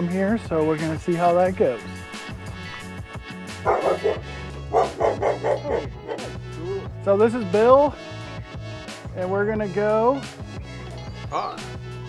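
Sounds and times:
background music: 0.0s - 12.0s
dog barking: 3.6s - 6.4s.

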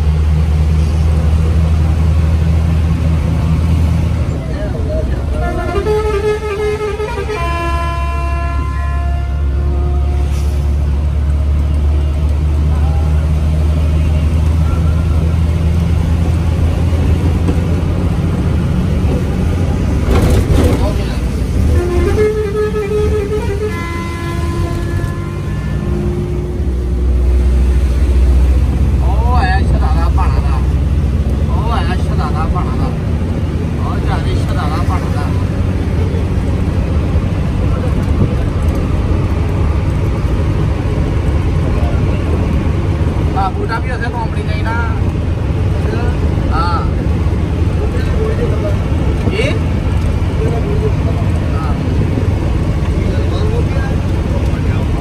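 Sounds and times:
bus engine droning: 0.0s - 55.0s
road noise: 0.0s - 55.0s
multi-note vehicle horn: 5.4s - 10.3s, 21.7s - 26.5s.

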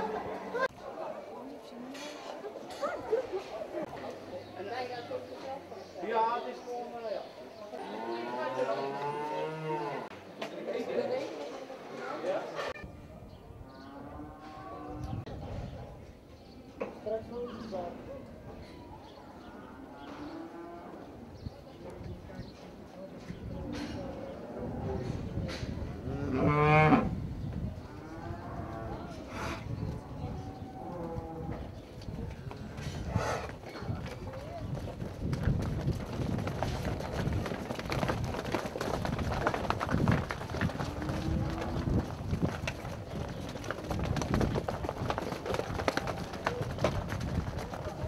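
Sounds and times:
cow hooves clattering on concrete: 29.7s - 48.0s.

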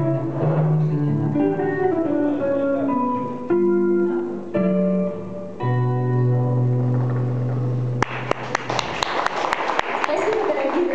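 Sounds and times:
guitar chord ringing: 0.0s - 8.0s
audience hand claps: 6.9s - 10.9s.

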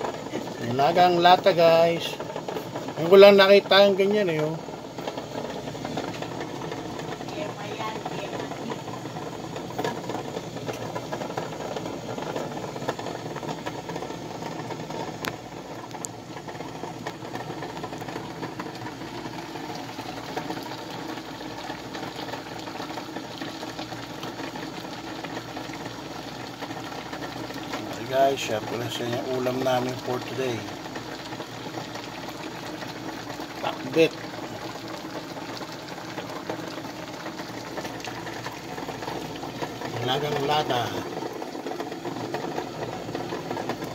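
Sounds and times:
cans rattling against pot: 0.0s - 43.9s
water boiling in pot: 0.0s - 43.9s.

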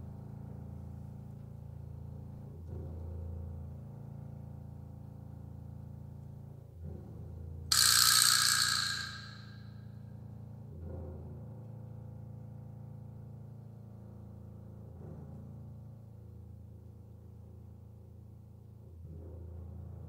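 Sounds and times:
loud bright crash: 7.7s - 9.6s.

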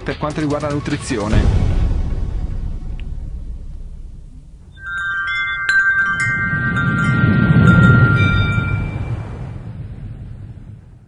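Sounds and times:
low rumble: 1.4s - 11.0s
bright strikes: 4.7s - 9.0s
shimmering chime tones: 4.7s - 9.4s.

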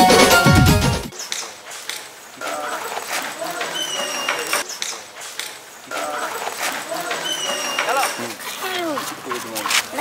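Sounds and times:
men talking: 5.9s - 10.0s.

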